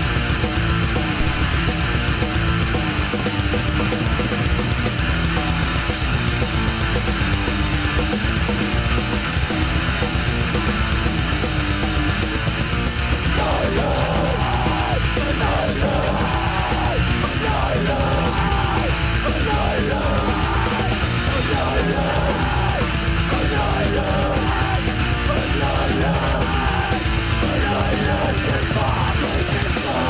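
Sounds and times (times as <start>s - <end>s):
distorted guitars: 0.0s - 30.0s
drums: 0.0s - 30.0s
shouted vocals: 13.4s - 30.0s.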